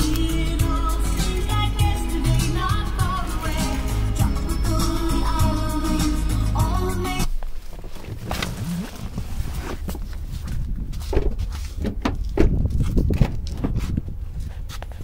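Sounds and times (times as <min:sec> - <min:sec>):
pop music from car stereo: 0:00.0 - 0:07.4
footsteps: 0:07.3 - 0:15.0
rustling: 0:07.3 - 0:15.0.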